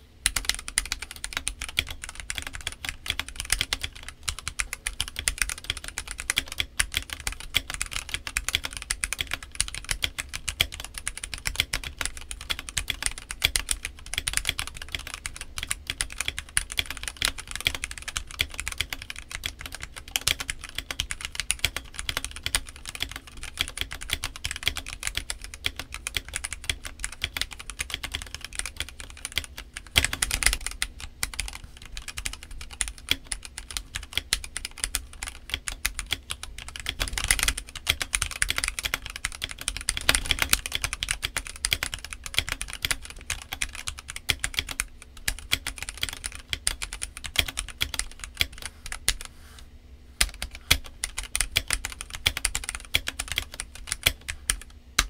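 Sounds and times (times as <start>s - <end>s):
fast mechanical keyboard typing: 0.0s - 49.3s, 50.2s - 55.0s.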